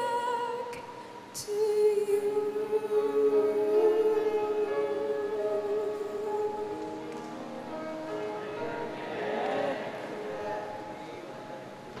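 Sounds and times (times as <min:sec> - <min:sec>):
sustained accompaniment chords: 0:03.3 - 0:12.0.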